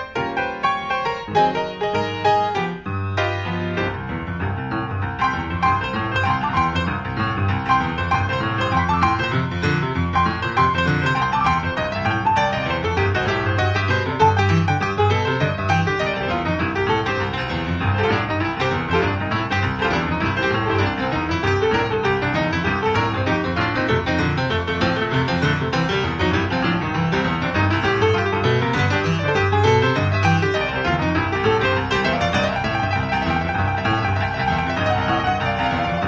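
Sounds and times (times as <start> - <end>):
boogie-woogie piano music: 0.0 - 36.0.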